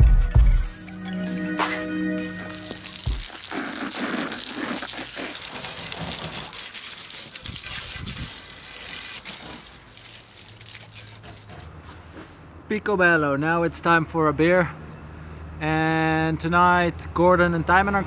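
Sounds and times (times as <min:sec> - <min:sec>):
hose water spraying on bicycle: 0:02.4 - 0:11.7.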